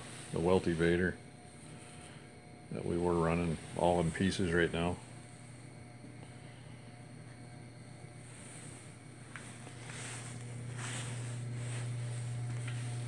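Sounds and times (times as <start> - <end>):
low mechanical hum: 0.0 - 13.0
soft rustles: 8.1 - 13.0.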